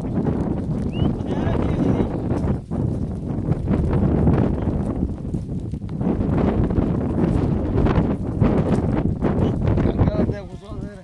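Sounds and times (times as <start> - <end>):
goats moving through dry brush: 0.0 - 11.0
wind buffeting microphone: 0.0 - 11.0.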